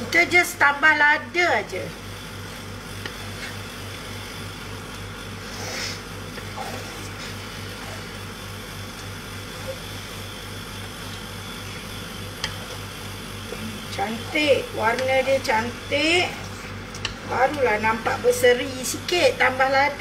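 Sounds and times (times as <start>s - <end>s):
extractor fan humming: 0.0s - 20.0s
ladle scraping a wok: 2.9s - 3.8s, 5.4s - 8.3s.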